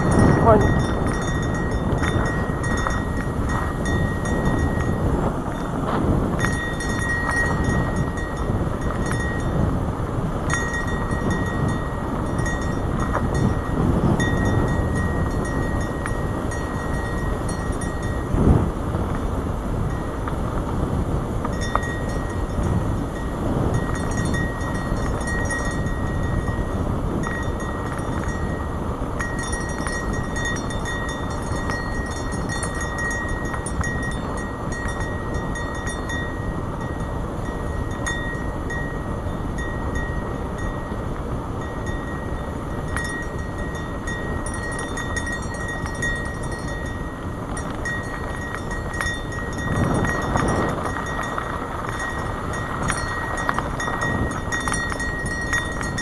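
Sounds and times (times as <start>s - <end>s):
bike tyres rolling on dirt: 0.0s - 56.0s
wind buffeting camera: 0.0s - 56.0s.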